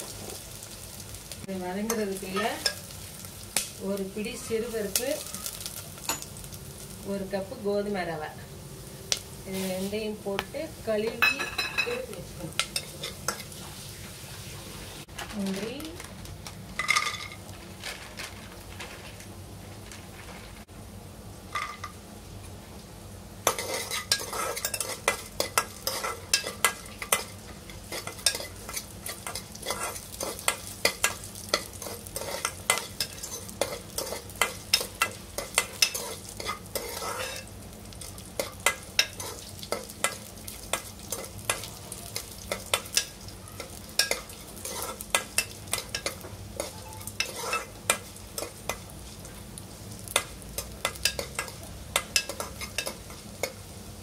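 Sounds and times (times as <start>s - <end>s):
oil sizzling: 0.0s - 54.0s
spoon scraping a pot: 23.5s - 37.5s, 41.1s - 48.8s.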